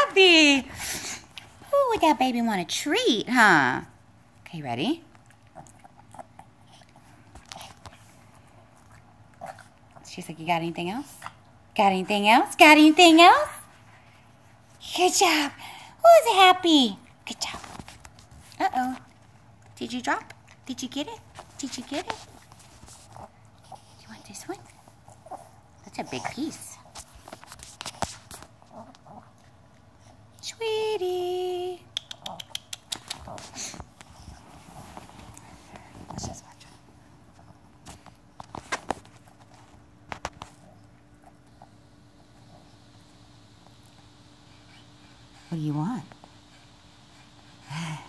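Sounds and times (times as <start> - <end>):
dog crunching a treat: 32.0 - 34.4.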